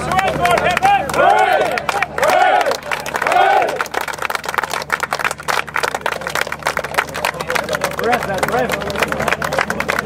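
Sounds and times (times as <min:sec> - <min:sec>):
group cheering shout: 0:00.0 - 0:03.8
crowd hand clapping: 0:00.0 - 0:10.0.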